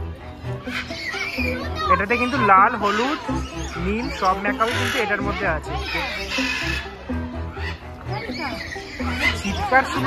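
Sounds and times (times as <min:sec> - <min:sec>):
music with a voice: 0:00.0 - 0:10.0
people's voices: 0:00.0 - 0:10.0.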